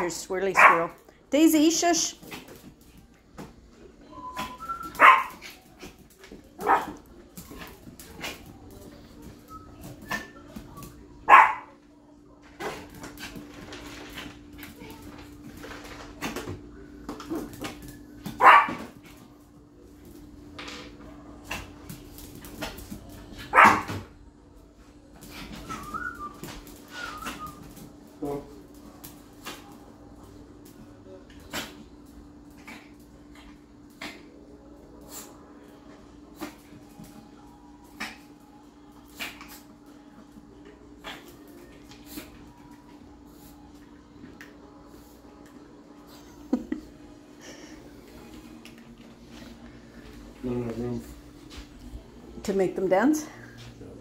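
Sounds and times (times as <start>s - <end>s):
small dog barking: 0.6s - 1.0s, 5.0s - 5.4s, 6.6s - 7.0s, 11.2s - 11.8s, 18.4s - 18.9s, 23.4s - 24.1s.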